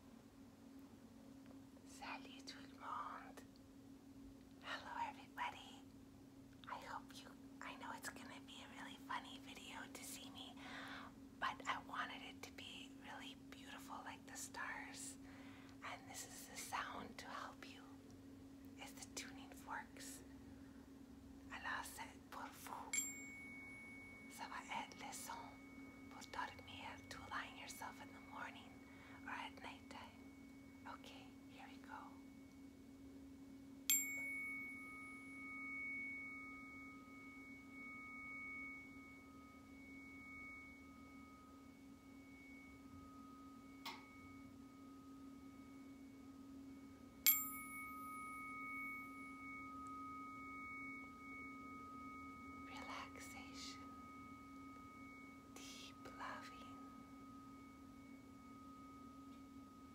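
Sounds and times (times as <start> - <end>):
low steady hum: 0.0 - 59.9
tuning fork strike: 22.4 - 29.2, 30.1 - 59.9
tuning forks ringing: 22.9 - 24.4, 33.8 - 59.9.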